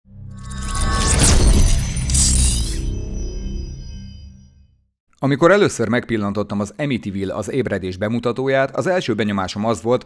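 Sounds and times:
bright whooshes: 0.2 - 4.6.

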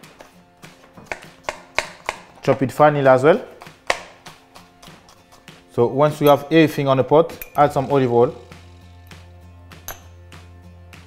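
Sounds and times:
quiet background music: 0.0 - 11.0
knife chopping on plastic board: 0.8 - 2.7, 3.4 - 5.8.

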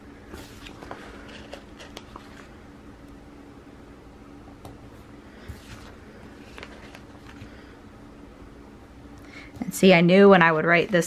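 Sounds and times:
paper rustling: 0.3 - 2.6, 5.4 - 7.6.

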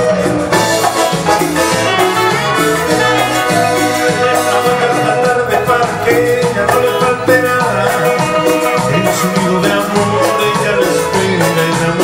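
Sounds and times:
latin dance band playing live: 0.0 - 12.0.

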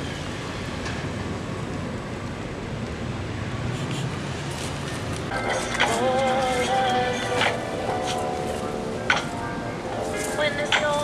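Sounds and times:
outdoor rumble and hiss: 0.0 - 11.0.

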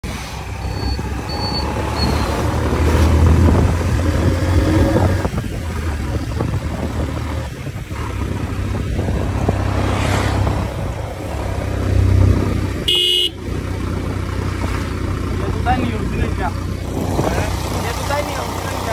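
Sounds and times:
low vehicle rumble: 0.0 - 18.9
high-pitched horn honk: 12.9 - 13.4.

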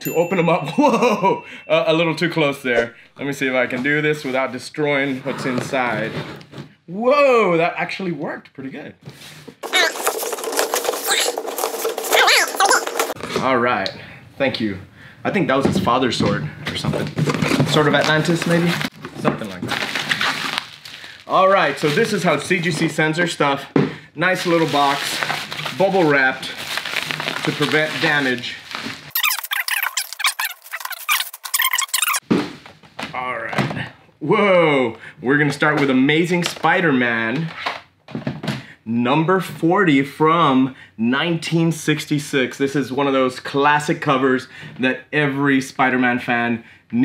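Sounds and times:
packing tape tearing: 9.6 - 13.2, 17.9 - 22.2, 26.6 - 32.2
plastic bag crinkling: 9.6 - 13.2, 17.9 - 22.4, 24.4 - 32.2
cardboard rustling: 9.6 - 13.3, 24.4 - 32.9.

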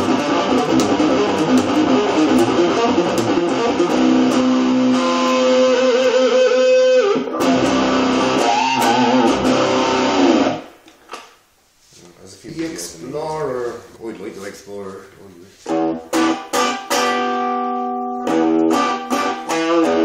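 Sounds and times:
distorted electric guitar: 0.0 - 10.8, 15.6 - 20.0.

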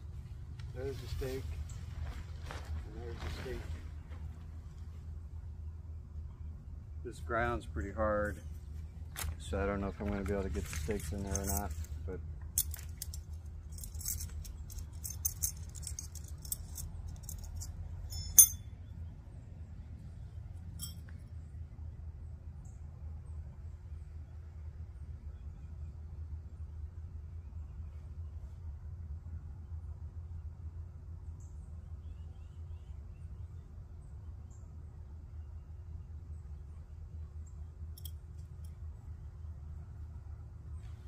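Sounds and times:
metal tent stakes clinking: 9.1 - 18.7, 20.6 - 21.2
faint bird chirps: 31.4 - 37.6.

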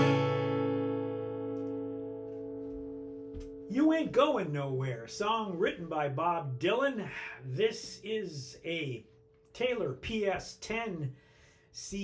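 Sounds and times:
acoustic guitar chord ringing: 0.0 - 4.4.

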